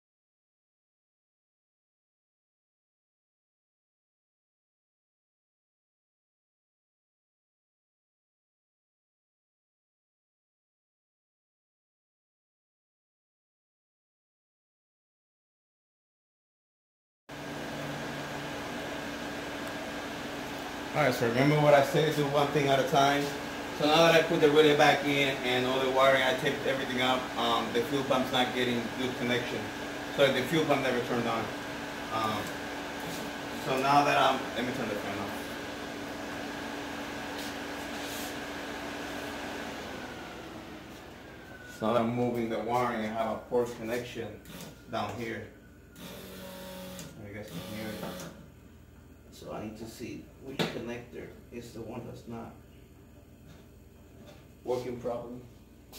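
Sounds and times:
electric fan whirring: 17.3 - 55.9.

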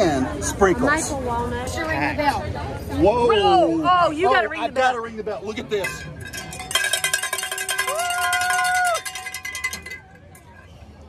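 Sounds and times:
handheld bell clanging: 5.8 - 10.6.

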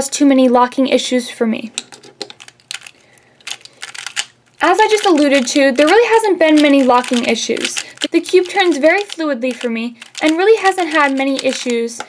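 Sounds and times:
plastic puzzle cube clicking: 2.2 - 12.0.

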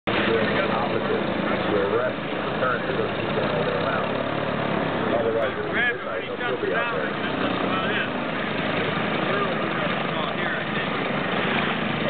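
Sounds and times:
people talking: 0.1 - 4.2, 5.0 - 12.0
flying boat engines droning: 0.1 - 12.0.

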